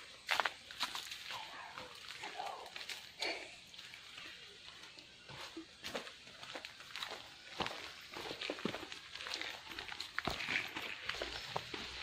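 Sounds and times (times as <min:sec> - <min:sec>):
footsteps on leafy dirt trail: 0:00.0 - 0:12.0.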